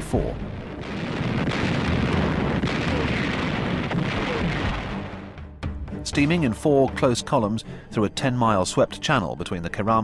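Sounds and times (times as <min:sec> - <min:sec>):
heavy gunfire and shell explosions: 0:00.0 - 0:05.4.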